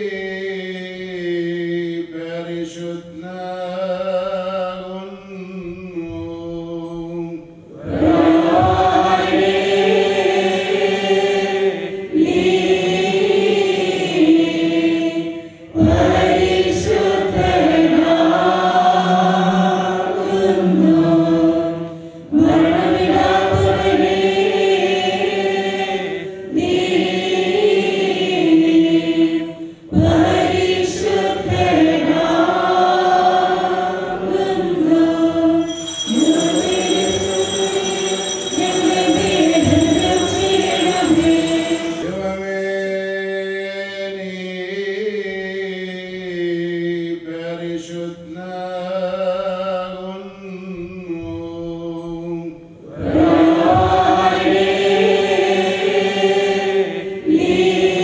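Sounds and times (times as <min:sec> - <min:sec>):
choir and congregation chanting: 0:00.0 - 0:58.0.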